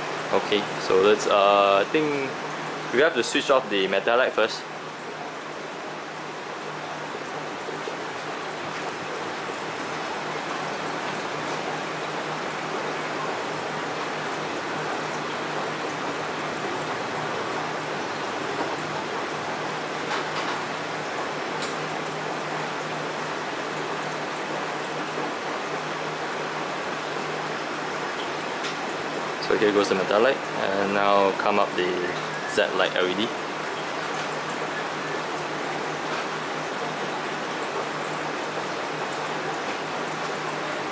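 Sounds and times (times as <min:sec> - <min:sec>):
water rushing and trickling: 0:00.0 - 0:40.9.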